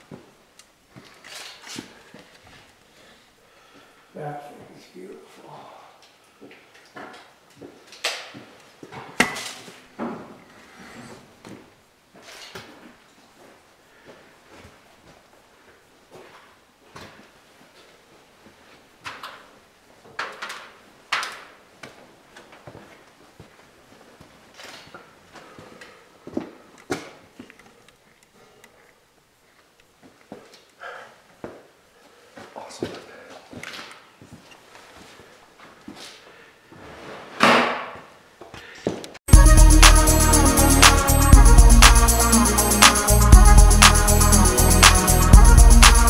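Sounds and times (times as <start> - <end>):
loud music with steady beat: 39.3 - 46.0.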